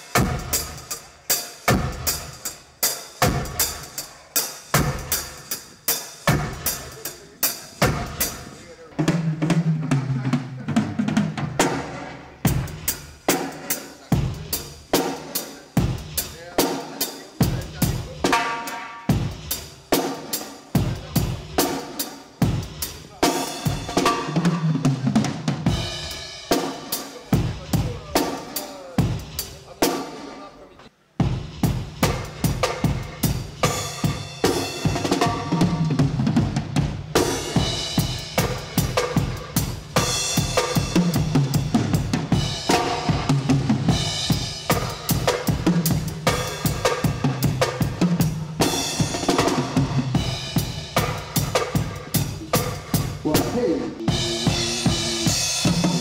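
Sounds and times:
drum kit playing reggae grooves: 0:00.0 - 0:56.0.

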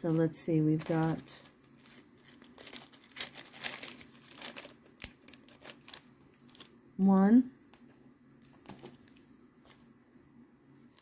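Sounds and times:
plastic bags crinkling: 0:00.1 - 0:06.8.

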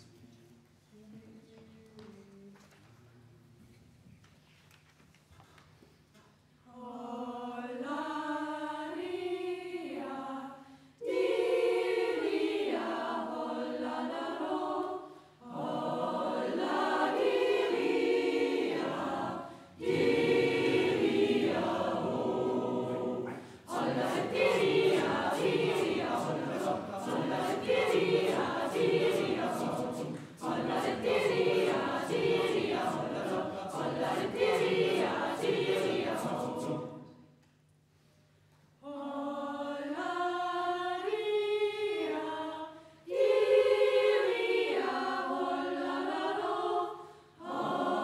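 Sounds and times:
youth choir singing unaccompanied: 0:06.7 - 0:37.3, 0:38.8 - 0:48.0.

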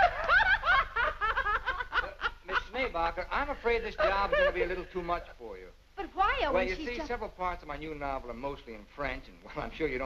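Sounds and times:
women laughing: 0:00.0 - 0:02.8, 0:04.0 - 0:04.9.

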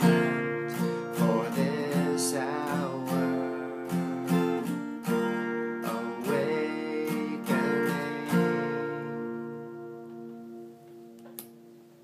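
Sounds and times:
acoustic guitar chord ringing: 0:00.0 - 0:12.0
sharp click: 0:11.2 - 0:11.6.

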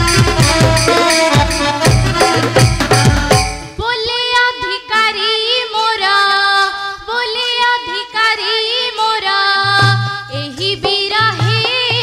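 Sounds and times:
drum: 0:00.0 - 0:03.9
girl singing a folk song: 0:03.6 - 0:12.0.

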